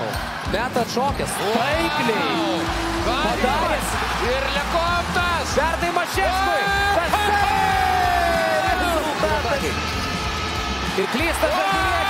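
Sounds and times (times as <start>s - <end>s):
arena crowd noise: 0.0s - 12.0s
background music: 0.0s - 12.0s
commentator yelling excitedly: 1.2s - 9.8s, 11.0s - 12.0s.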